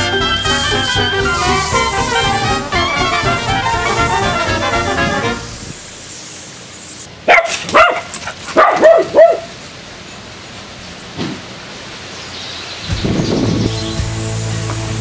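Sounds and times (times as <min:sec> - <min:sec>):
background music: 0:00.0 - 0:05.8, 0:13.7 - 0:15.0
dog barking: 0:07.2 - 0:09.5.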